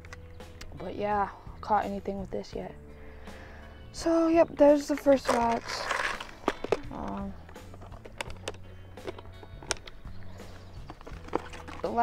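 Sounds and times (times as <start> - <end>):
faint background music: 0.0 - 12.0
plastic boxes clicking and knocking: 4.9 - 10.0, 10.8 - 12.0.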